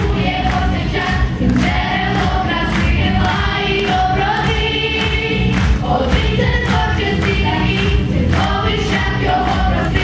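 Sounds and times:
children's choir singing: 0.0 - 10.0
instrumental accompaniment with beat: 0.0 - 10.0.

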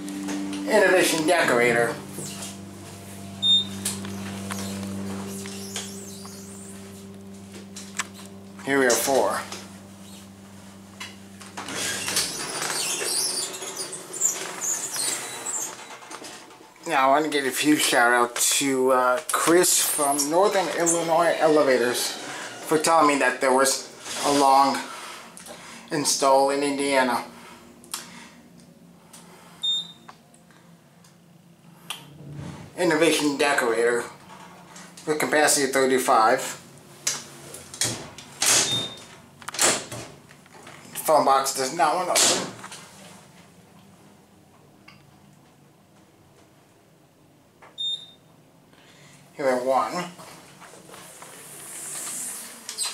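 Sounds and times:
elevator machinery hum: 0.0 - 17.2, 19.3 - 24.2, 24.9 - 41.0
door high squeaks: 0.2 - 10.4, 11.0 - 16.2, 19.8 - 22.8, 38.4 - 39.7.

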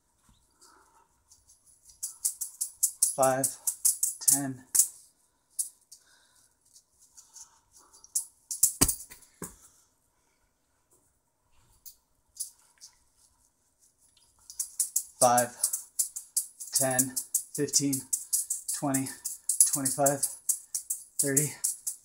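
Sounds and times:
juggling balls clicking: 1.4 - 5.0, 8.0 - 9.6, 14.4 - 22.0.

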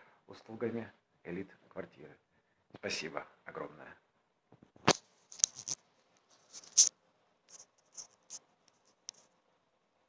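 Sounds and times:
phone handling rubs: 4.9 - 6.9.

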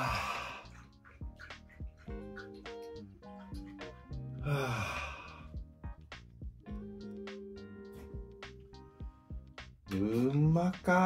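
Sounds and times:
background music with beat: 0.0 - 11.0.

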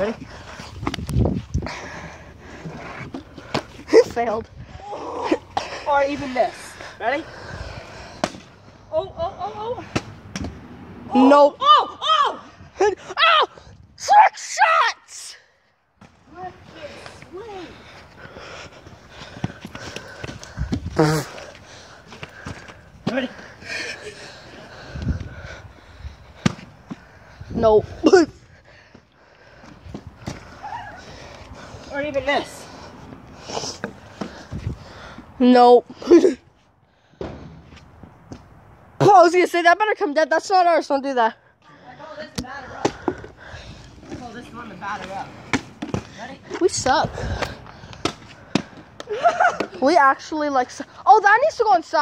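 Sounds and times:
dull low thump: 37.2 - 38.4.

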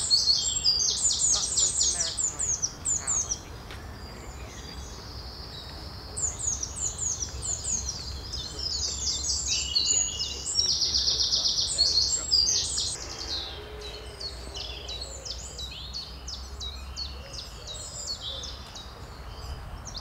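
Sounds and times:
songbirds singing: 0.0 - 20.0.

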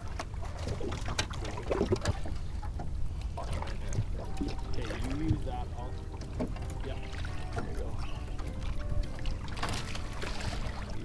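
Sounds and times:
water slapping against boat hull: 0.0 - 11.0
water splash: 0.0 - 11.0.

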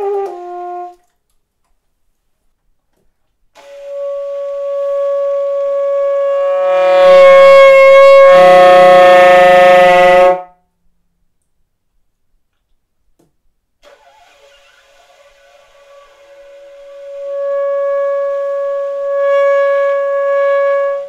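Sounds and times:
saxophone long held note: 0.0 - 1.0, 3.6 - 10.5, 15.7 - 21.0.

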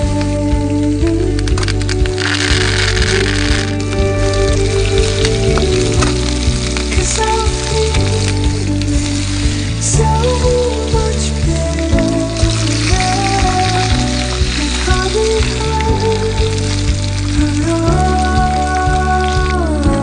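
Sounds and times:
background music: 0.0 - 20.0
meat sizzling in a frying pan: 0.8 - 19.7.

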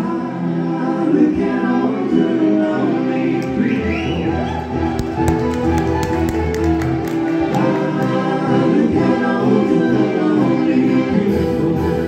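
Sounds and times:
electric guitars: 1.8 - 12.0.

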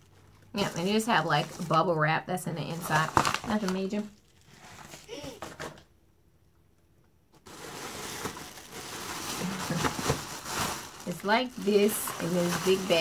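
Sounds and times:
plastic bag and bubble wrap crinkling: 0.3 - 5.5, 7.4 - 13.0.

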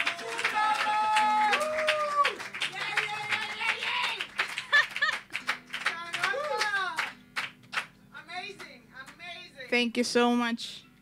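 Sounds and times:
small audience clapping: 0.0 - 9.3.

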